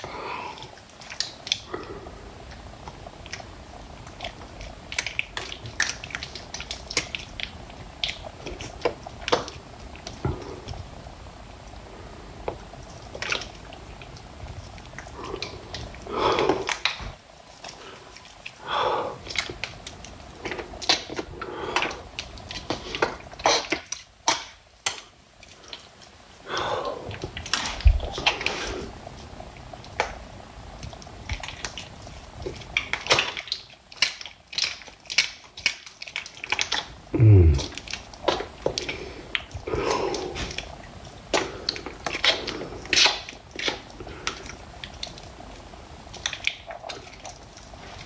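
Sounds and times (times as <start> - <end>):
wet squishy clicks: 0.6 - 10.8, 30.8 - 37.0, 37.6 - 45.4, 46.0 - 48.0.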